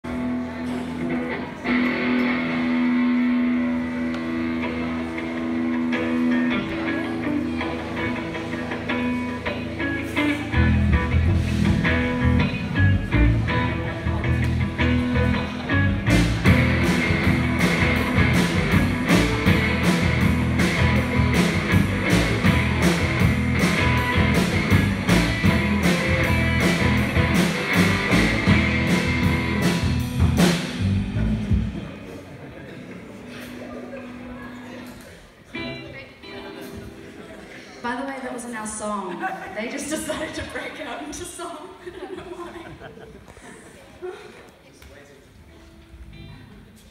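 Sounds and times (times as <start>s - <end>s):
electric guitar: 0.0s - 37.8s
heavy low end bass: 10.7s - 32.0s
drums with cymbals: 16.0s - 31.8s.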